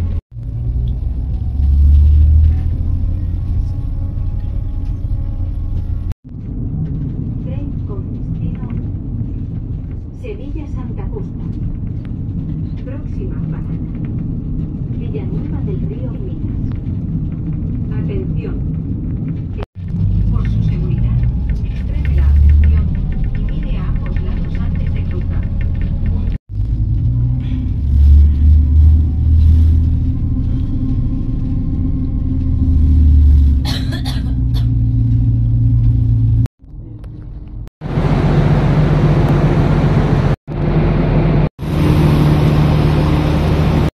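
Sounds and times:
train interior rumble: 0.0 - 43.9
clicking and rattling: 5.8 - 27.1.

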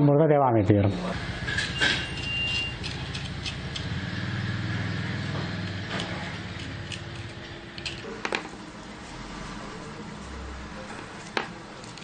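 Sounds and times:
engine humming: 0.9 - 12.0.

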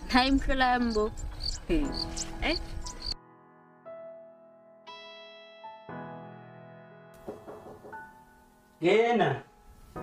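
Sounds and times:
insects chirping: 0.4 - 3.2.

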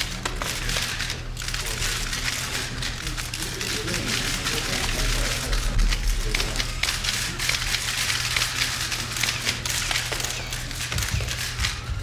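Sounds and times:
steady low hum: 0.0 - 12.0
camera shutters clicking: 6.9 - 11.8.

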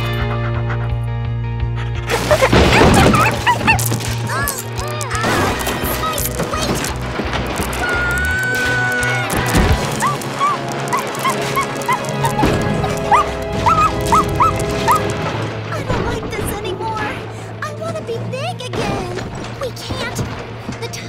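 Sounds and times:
cartoon background music: 0.0 - 21.0
animal high-pitched yips: 2.0 - 5.2, 7.7 - 15.2.

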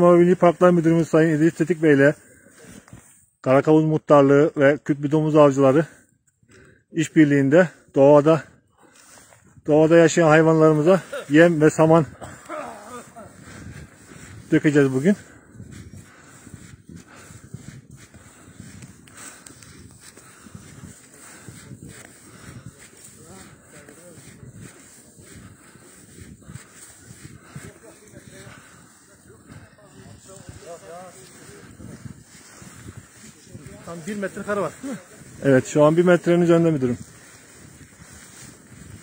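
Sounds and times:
footsteps crunching in snow: 0.0 - 3.4, 8.8 - 39.0
faint voices: 21.0 - 38.7.

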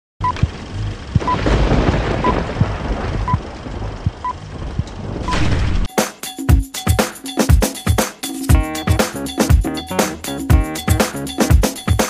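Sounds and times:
low thumps: 0.3 - 5.9.

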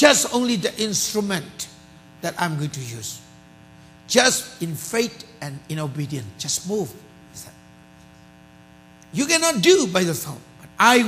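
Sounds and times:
faint electrical mains hum: 0.0 - 11.0
person speaking: 9.1 - 11.0.

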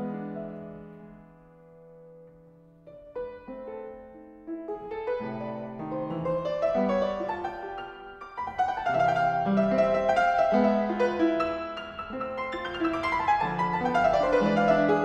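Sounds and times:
solo piano playing: 0.0 - 15.0.

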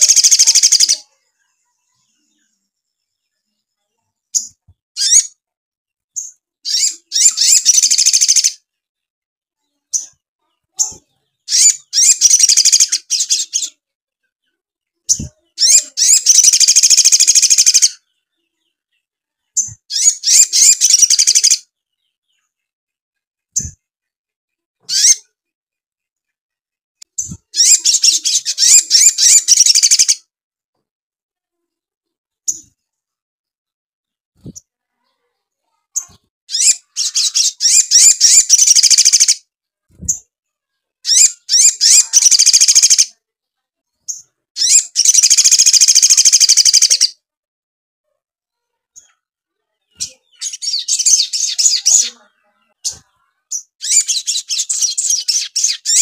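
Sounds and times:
bird rapid chattering song: 0.0 - 2.5, 4.3 - 5.4, 6.1 - 8.7, 9.8 - 22.7, 23.5 - 23.9, 24.8 - 25.4, 27.0 - 30.3, 32.5 - 32.8, 35.7 - 40.3, 41.0 - 43.2, 44.1 - 47.2, 48.9 - 56.0.

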